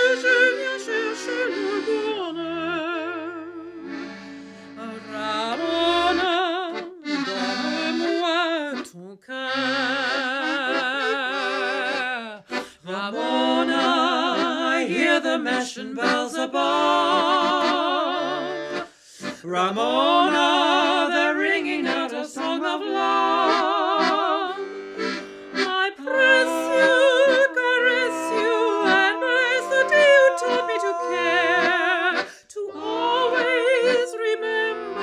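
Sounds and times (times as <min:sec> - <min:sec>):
woman singing with vibrato: 0:00.0 - 0:03.8, 0:04.8 - 0:35.0
accordion chords: 0:00.0 - 0:08.9, 0:09.5 - 0:35.0.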